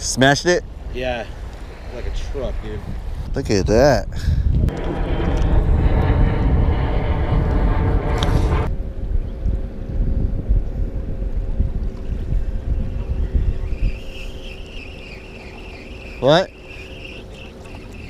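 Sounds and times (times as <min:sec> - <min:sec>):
wind buffeting microphone: 0:00.0 - 0:18.0
droning hum: 0:04.6 - 0:18.0
faint steady tones: 0:04.7 - 0:18.0.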